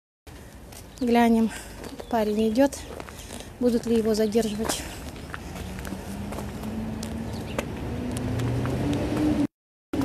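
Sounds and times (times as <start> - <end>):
vehicle engine running: 5.0 - 9.3.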